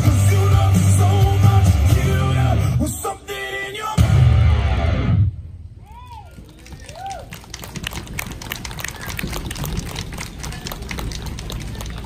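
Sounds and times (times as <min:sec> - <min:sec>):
audience applause: 0:06.0 - 0:12.0.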